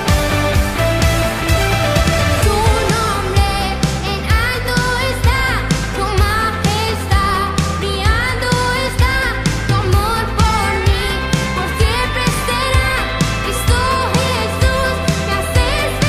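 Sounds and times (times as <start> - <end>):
band playing upbeat song: 0.0 - 16.0
steady drum beat: 0.0 - 16.0
person singing lead vocals: 2.0 - 16.0.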